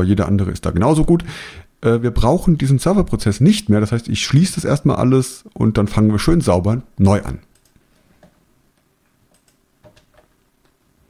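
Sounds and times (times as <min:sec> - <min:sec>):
computer clicks: 0:07.5 - 0:08.4, 0:09.3 - 0:10.3.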